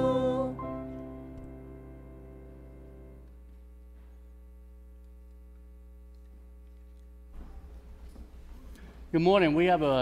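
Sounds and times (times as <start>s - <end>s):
held musical chord: 0.0s - 3.3s
electrical mains hum: 0.0s - 10.0s.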